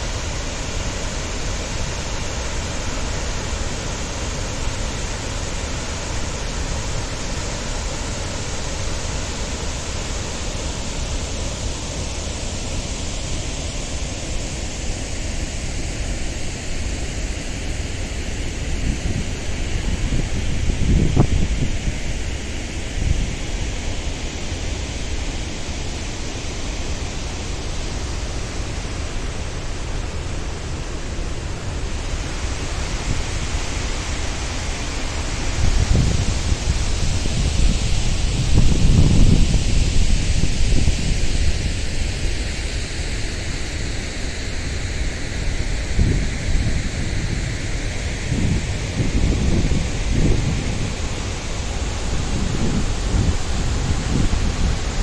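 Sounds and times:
waterfall rushing: 0.0 - 19.9, 24.9 - 55.0
wind buffeting microphone: 18.8 - 22.2, 35.4 - 41.9, 48.2 - 55.0.

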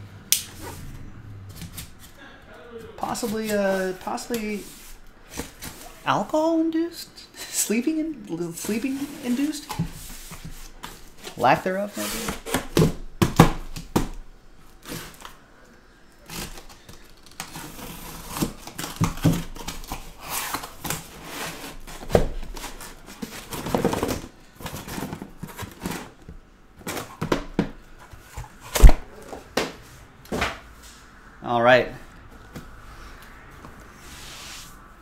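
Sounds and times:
cardboard box scraping and rustling: 17.5 - 26.2.

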